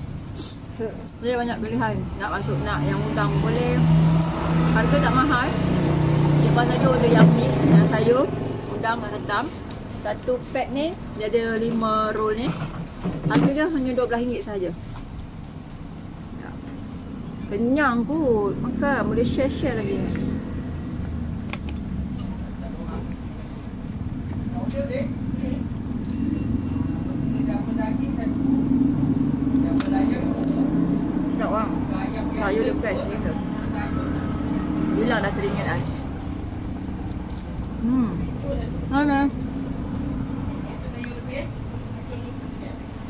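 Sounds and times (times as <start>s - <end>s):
low rumble of road traffic: 0.0s - 43.0s
vehicle engine hum: 0.0s - 43.0s.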